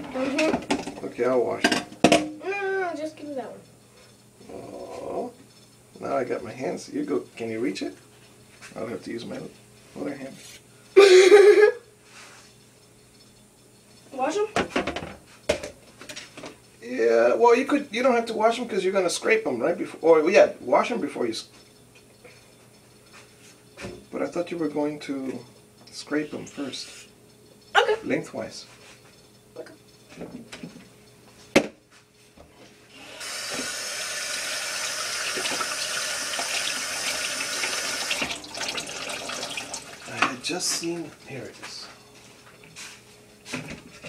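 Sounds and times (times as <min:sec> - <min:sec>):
tap running into sink: 0:33.3 - 0:40.4.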